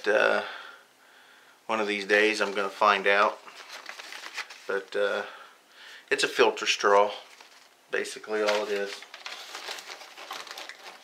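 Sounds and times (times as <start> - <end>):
plastic packaging crinkling: 2.2 - 5.0, 7.2 - 11.0.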